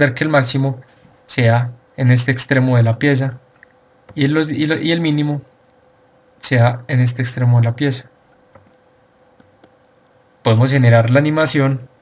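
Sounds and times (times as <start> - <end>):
low steady hum: 0.0 - 12.0
computer mouse clicks: 8.3 - 9.8.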